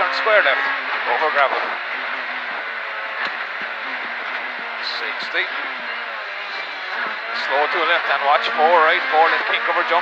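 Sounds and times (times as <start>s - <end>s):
car engine running hard: 0.0s - 10.0s
tyre and road noise: 0.0s - 10.0s.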